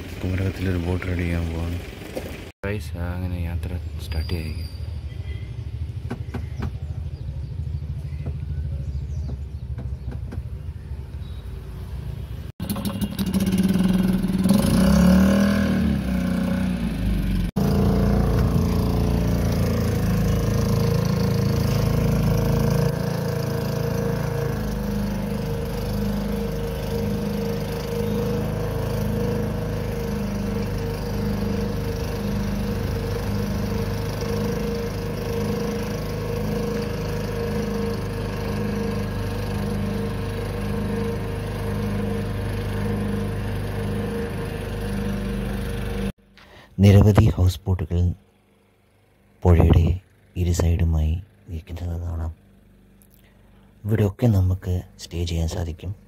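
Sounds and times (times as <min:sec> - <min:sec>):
motorboat engine droning: 0:00.0 - 0:56.0.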